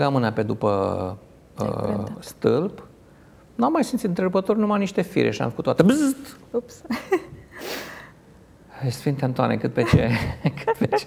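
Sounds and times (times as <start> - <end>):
person speaking: 1.6 - 2.4, 9.8 - 11.0.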